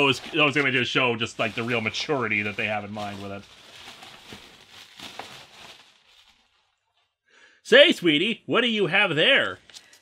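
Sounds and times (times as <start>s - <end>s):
faint rustling and handling noise: 0.0s - 7.2s.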